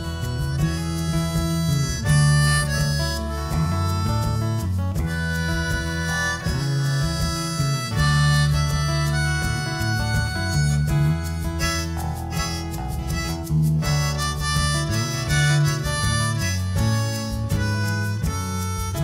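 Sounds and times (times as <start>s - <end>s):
acoustic guitars: 0.0s - 19.0s
bass guitar: 0.0s - 19.0s
drums: 0.0s - 19.0s
harmonica solo: 0.0s - 19.0s.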